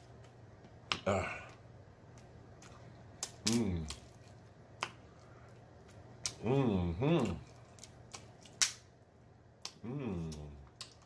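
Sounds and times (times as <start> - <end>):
quiet chewing: 0.0 - 6.5, 9.6 - 11.0
faint low hum: 0.0 - 11.0.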